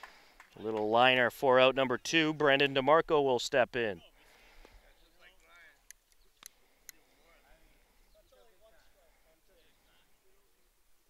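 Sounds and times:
faint distant voices: 4.0 - 11.0.

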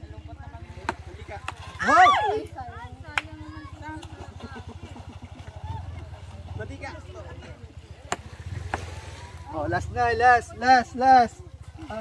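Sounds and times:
people talking: 0.0 - 8.2
small boat engine running: 0.0 - 12.0.

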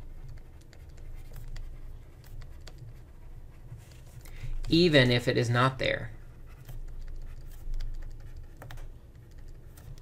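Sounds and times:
stylus scratching on tablet: 0.0 - 10.0.

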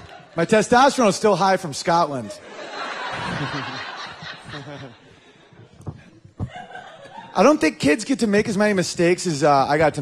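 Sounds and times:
audience laughter: 2.1 - 5.8, 6.5 - 7.6
man chuckling into microphone: 3.1 - 5.2
microphone knocks: 5.6 - 6.6.

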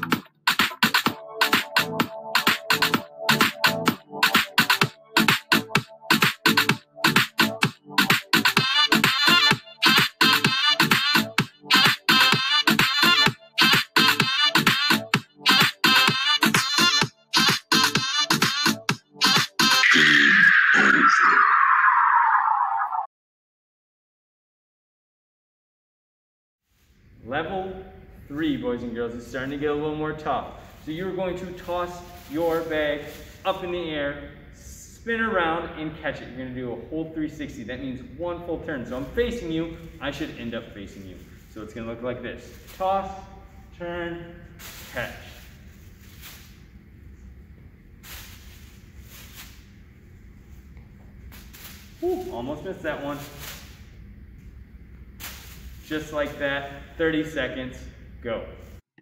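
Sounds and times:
low room hum: 26.8 - 58.8
plastic bag rustling: 30.5 - 33.7, 38.9 - 43.8, 44.4 - 47.4, 48.0 - 54.0, 55.2 - 56.4.

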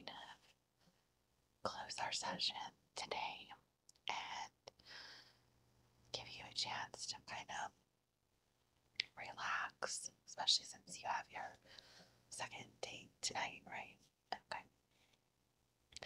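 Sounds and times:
woman whispering: 0.0 - 0.4, 1.7 - 4.8, 6.2 - 7.7, 9.0 - 11.6, 12.3 - 14.7.

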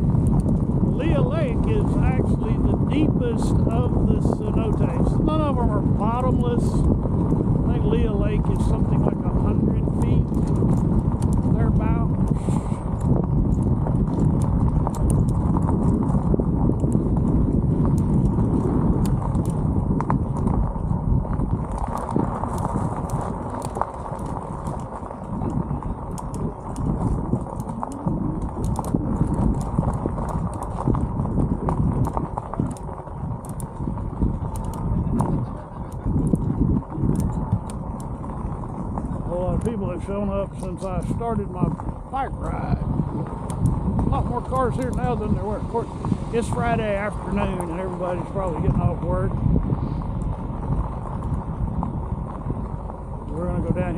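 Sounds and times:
bicycle tyres rolling on gravel: 0.0 - 53.9
stones crunching under wheels: 0.0 - 53.9
wind rumble on microphone: 0.0 - 53.9.

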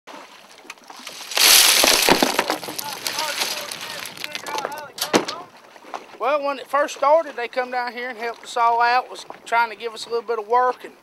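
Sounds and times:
water splashing: 0.1 - 9.6.

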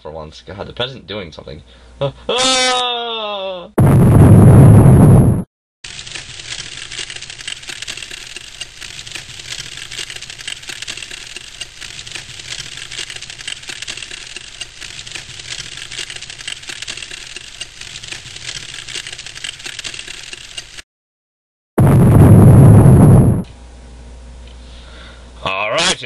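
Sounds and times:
fire crackling: 3.8 - 20.8, 21.8 - 23.5.

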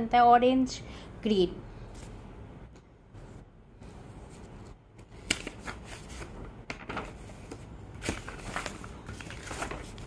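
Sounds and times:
paper sheets rustling: 4.3 - 10.0.

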